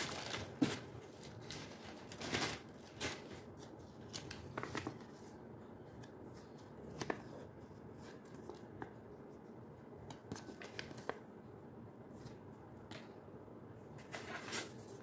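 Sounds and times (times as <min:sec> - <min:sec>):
plastic and paper rustling: 0:00.0 - 0:09.0.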